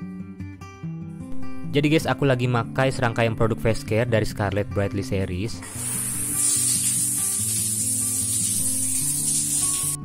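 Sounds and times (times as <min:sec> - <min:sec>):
soft background music: 0:00.0 - 0:10.0
shower water spraying: 0:05.6 - 0:10.0.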